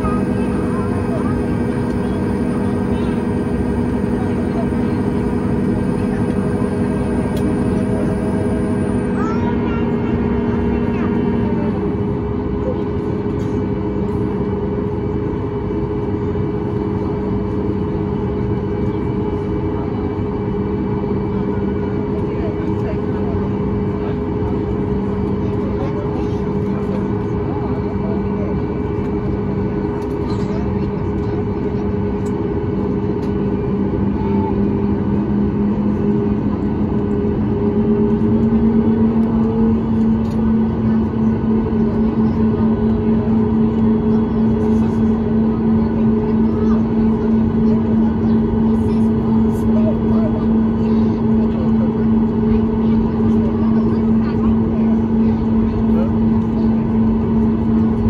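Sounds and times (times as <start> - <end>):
aircraft cabin engine drone: 0.0 - 58.0
low cabin hum: 0.0 - 58.0.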